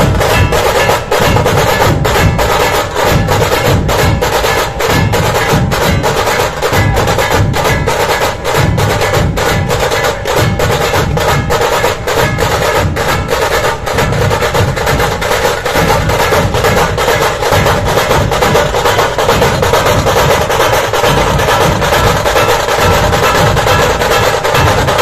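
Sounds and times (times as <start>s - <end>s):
fast sharp drum strokes: 0.0s - 25.0s
large drums beating low pulse: 0.0s - 25.0s.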